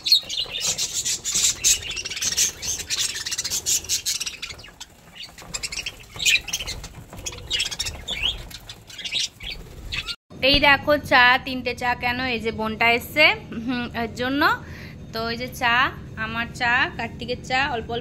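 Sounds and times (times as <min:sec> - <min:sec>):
budgerigars chirping: 0:00.0 - 0:10.2.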